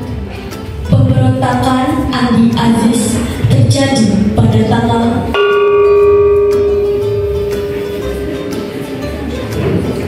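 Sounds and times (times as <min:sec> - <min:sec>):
pot gong ringing: 0:05.3 - 0:10.0.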